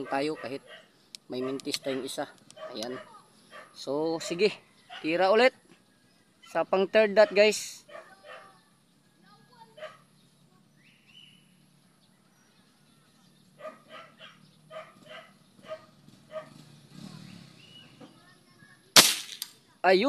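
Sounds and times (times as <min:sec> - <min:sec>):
dog barking: 0:00.0 - 0:05.2, 0:07.2 - 0:08.7, 0:09.7 - 0:10.1, 0:13.6 - 0:16.6
air rifle shot: 0:19.0 - 0:19.5.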